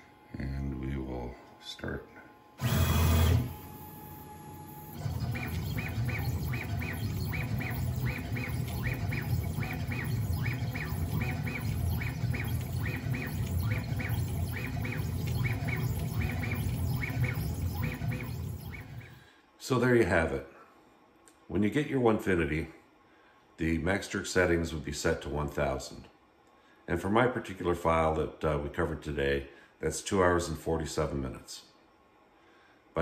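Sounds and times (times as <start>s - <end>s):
rapid high motor chirps: 2.6s - 19.2s
stepper motors humming: 2.6s - 19.2s.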